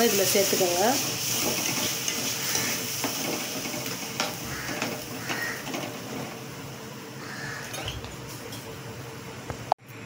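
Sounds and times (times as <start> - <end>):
gravy sizzling in a pan: 0.0 - 8.8
metal spatula scraping a pan: 0.6 - 6.4.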